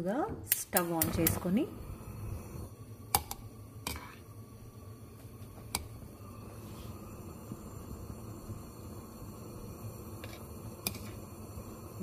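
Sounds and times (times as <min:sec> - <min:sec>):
steady low hum: 0:01.1 - 0:12.0.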